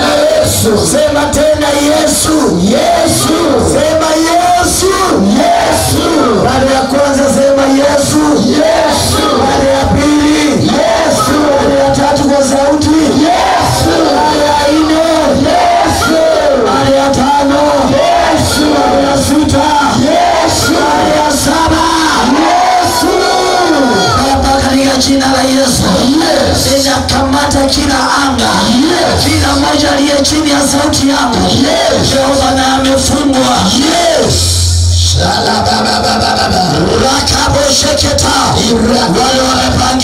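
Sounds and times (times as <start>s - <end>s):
congregation praying aloud: 0.0s - 40.0s
worship music with held notes: 0.0s - 40.0s.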